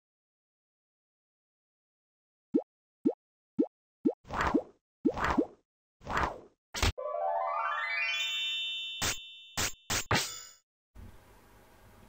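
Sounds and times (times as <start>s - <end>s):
cartoon swooshes with pops: 4.3s - 7.0s.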